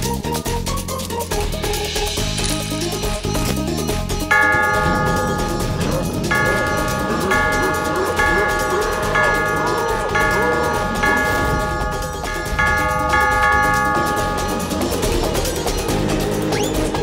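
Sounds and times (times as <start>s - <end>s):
large bell ringing: 4.3s - 16.5s.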